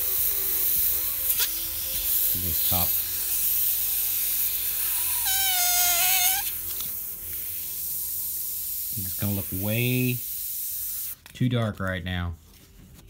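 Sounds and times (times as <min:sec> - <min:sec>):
airbrush spraying paint: 0:00.0 - 0:11.2.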